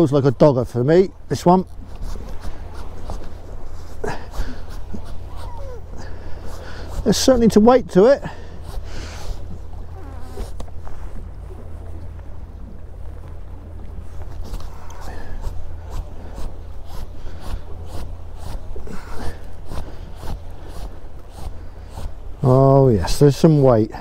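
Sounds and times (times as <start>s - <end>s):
low wind rumble: 0.0s - 24.0s
waves slapping boat hull: 0.0s - 24.0s.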